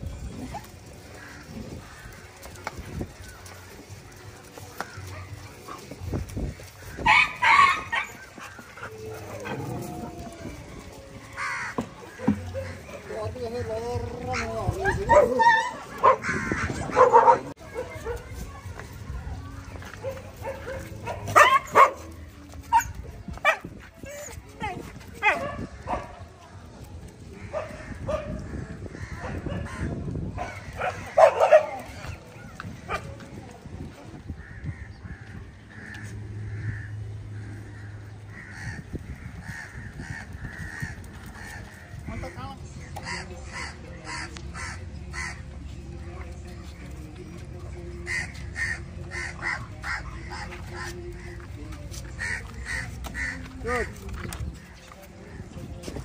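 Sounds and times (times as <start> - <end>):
dogs barking and yelping: 0.2 - 13.1, 14.2 - 18.9, 19.8 - 26.3, 27.4 - 33.2
crows cawing: 1.1 - 2.6, 11.2 - 13.1, 16.1 - 16.9, 34.4 - 45.4, 48.0 - 51.4, 52.2 - 54.7.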